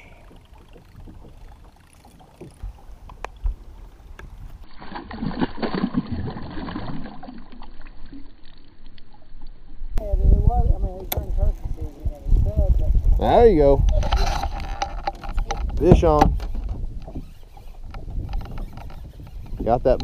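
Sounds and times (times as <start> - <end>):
boat noise: 0.0 - 4.7, 10.0 - 20.0
low wind: 0.0 - 20.0
fish thrashing in water: 4.7 - 8.3.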